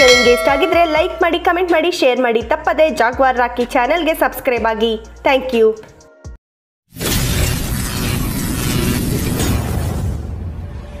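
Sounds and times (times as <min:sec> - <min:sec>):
music: 0:00.0 - 0:06.4.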